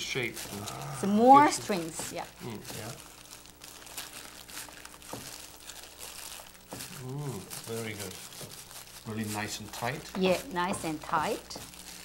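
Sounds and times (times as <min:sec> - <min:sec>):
plastic gloves crinkling: 0:00.0 - 0:12.0.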